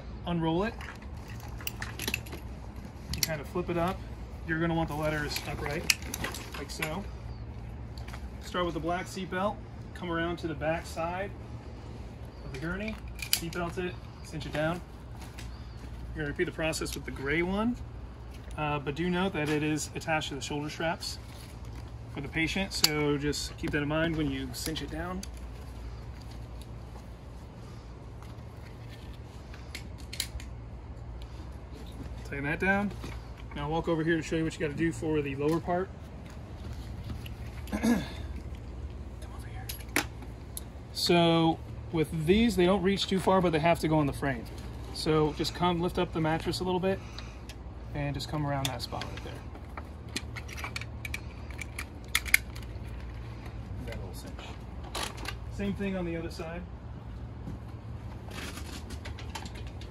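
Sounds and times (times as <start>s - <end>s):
steady low hum: 0.0s - 59.9s
strap buckle clicks and rattles: 0.8s - 4.0s, 12.8s - 13.8s, 28.2s - 30.6s, 49.5s - 54.0s
strap hardware clicks: 12.5s - 13.8s, 29.5s - 30.6s, 48.6s - 53.2s.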